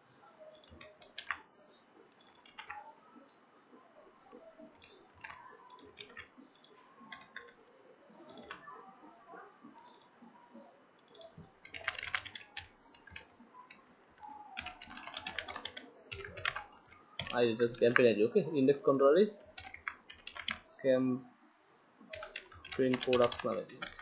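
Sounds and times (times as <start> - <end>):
computer keyboard typing: 0.5 - 1.5, 2.1 - 2.9, 4.3 - 8.8, 9.8 - 10.1, 11.0 - 18.1, 19.4 - 20.7, 22.1 - 24.0.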